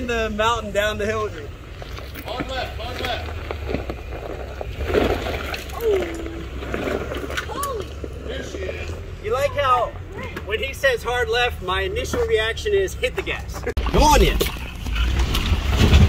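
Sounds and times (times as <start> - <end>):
voices: 0.0 - 4.7, 5.6 - 15.2
engine low rumble: 0.0 - 16.0.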